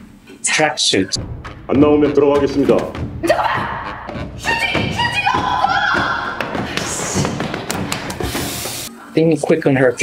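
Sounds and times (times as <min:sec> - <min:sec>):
music: 0:01.0 - 0:10.0
thuds and taps: 0:02.5 - 0:03.4, 0:04.1 - 0:08.4.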